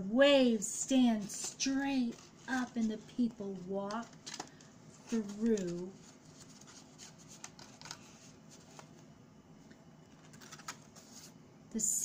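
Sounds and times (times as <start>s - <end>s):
paper rustling: 1.2s - 9.0s, 10.1s - 11.4s.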